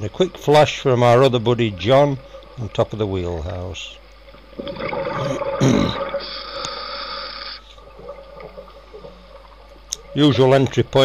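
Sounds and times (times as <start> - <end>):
exhaled bubbles gurgling: 0.0 - 11.0
regulator air hiss: 6.0 - 7.8.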